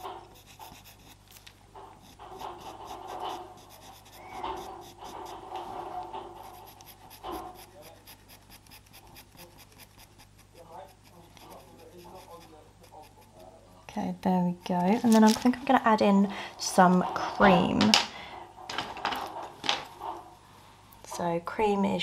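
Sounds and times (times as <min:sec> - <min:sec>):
pastel pencil scratching on paper: 0:00.0 - 0:15.8.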